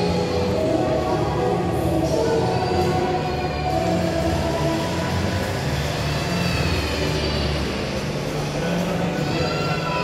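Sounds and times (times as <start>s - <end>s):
faint background music: 0.0s - 10.0s
shopping mall ambience rumble: 0.0s - 10.0s.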